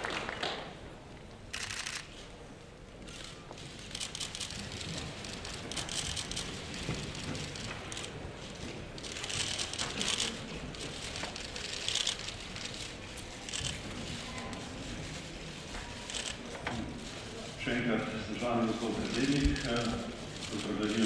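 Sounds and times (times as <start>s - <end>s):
low shuffle of a large hall: 0.0s - 21.0s
rapid camera shutter clicks: 1.5s - 2.2s, 3.0s - 13.8s, 16.1s - 16.4s, 19.0s - 21.0s.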